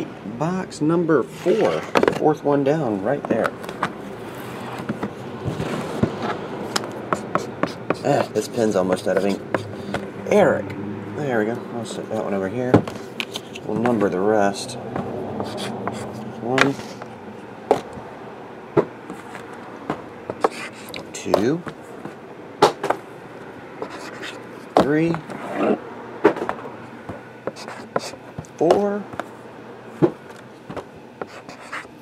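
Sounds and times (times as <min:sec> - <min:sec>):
cardboard boxes rustling and sliding: 0:03.7 - 0:10.1, 0:18.8 - 0:20.8
marker scratching on paper: 0:05.6 - 0:10.1, 0:15.4 - 0:17.1, 0:20.3 - 0:21.1, 0:23.8 - 0:24.8, 0:27.4 - 0:28.2, 0:31.2 - 0:32.0.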